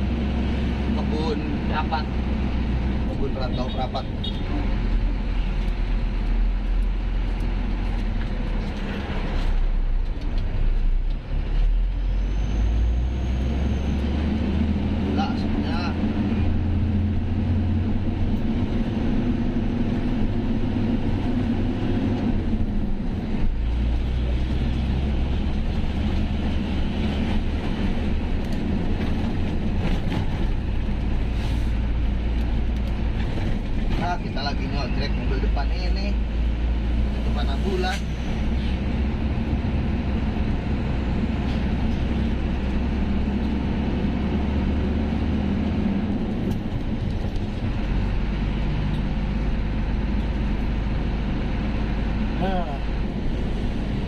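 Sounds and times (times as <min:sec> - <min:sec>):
truck diesel engine running: 0:10.8 - 0:33.9, 0:35.6 - 0:54.0.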